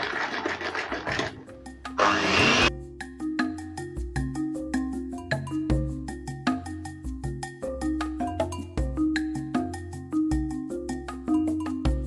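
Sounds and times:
electric hand mixer whirring: 0:02.0 - 0:02.7
background music with struck notes: 0:02.7 - 0:12.0.

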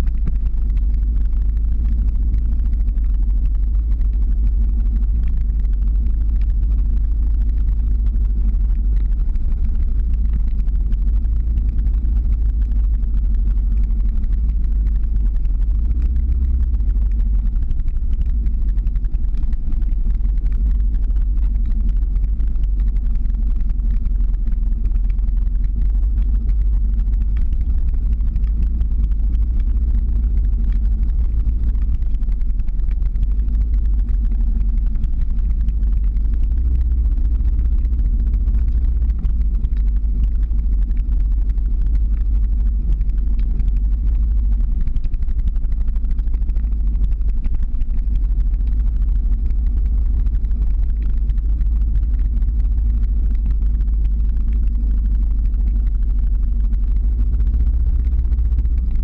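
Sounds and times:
faint hum: 0:00.0 - 0:59.0
vehicle engine rumble: 0:00.0 - 0:59.0.

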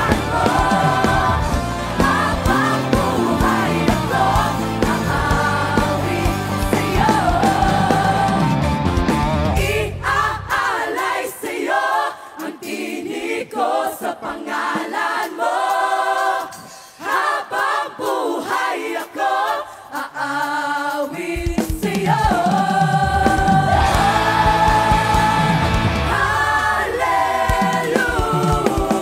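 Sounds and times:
drums and bass: 0:00.0 - 0:10.7, 0:21.3 - 0:29.0
choir singing: 0:00.0 - 0:29.0.

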